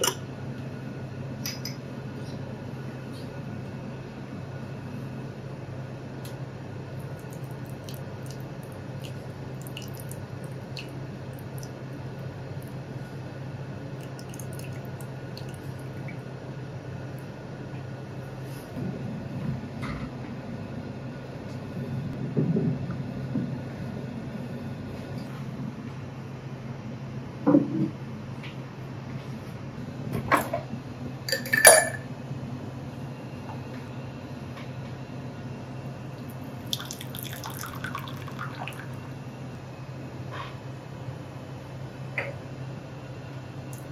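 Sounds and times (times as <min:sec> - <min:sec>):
steady low hum: 0:00.0 - 0:43.9
water trickling into teapot: 0:07.2 - 0:11.8, 0:14.0 - 0:16.1, 0:36.6 - 0:39.0.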